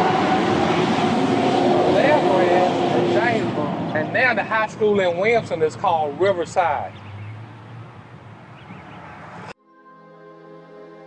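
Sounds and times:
road noise: 0.0 - 9.6
vehicle engine drone passing: 0.0 - 9.6.

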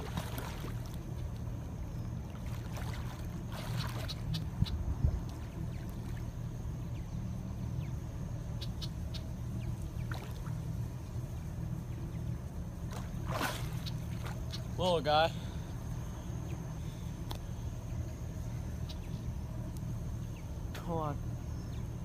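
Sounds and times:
water splashing and sloshing: 0.0 - 7.7, 9.1 - 16.0
steady low rumble: 0.0 - 22.0.

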